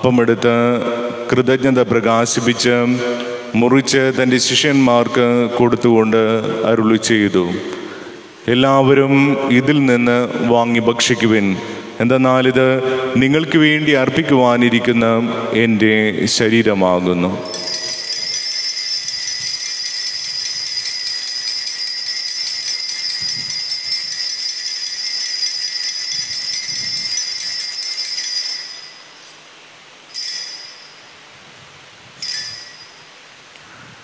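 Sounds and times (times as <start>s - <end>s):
altar bells jingling: 17.4s - 29.5s, 30.1s - 31.4s, 32.2s - 33.2s
single bell rings: 17.5s - 21.6s, 22.2s - 29.3s, 30.1s - 31.2s, 32.2s - 33.1s.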